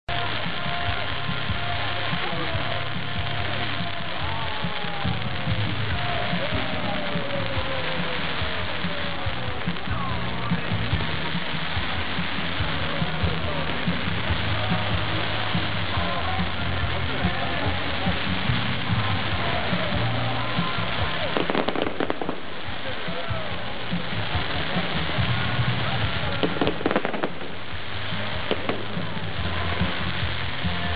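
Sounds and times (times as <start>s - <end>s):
crowd voices: 0.0s - 30.9s
fireworks crackling: 0.0s - 30.9s
sharp firework cracks: 0.0s - 30.9s
music: 0.1s - 30.9s.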